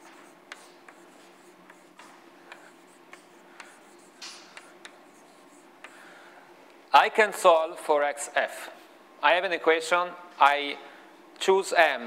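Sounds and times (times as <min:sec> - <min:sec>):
chalk tapping and scratching on blackboard: 0:00.0 - 0:06.0.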